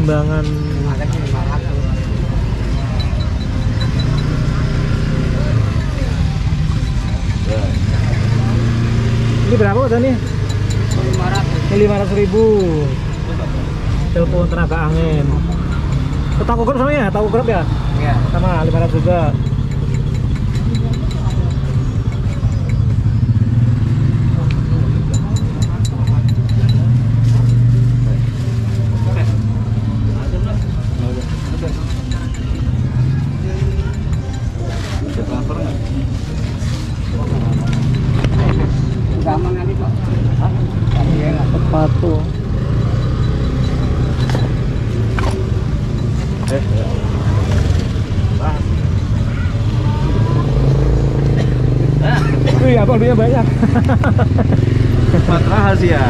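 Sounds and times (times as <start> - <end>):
motor vehicles rumbling: 0.0 - 56.0.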